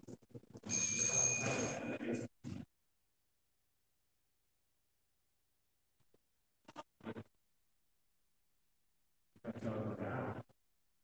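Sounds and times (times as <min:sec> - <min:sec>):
high steady ringing tone: 0:00.6 - 0:02.1.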